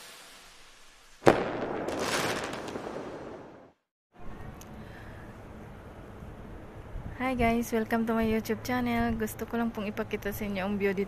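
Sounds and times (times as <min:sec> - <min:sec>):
crackling sparkly tail: 0:00.0 - 0:03.8.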